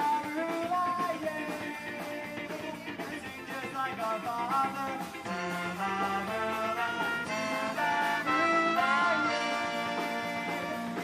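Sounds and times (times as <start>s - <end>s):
live band with brass section: 0.0s - 11.0s.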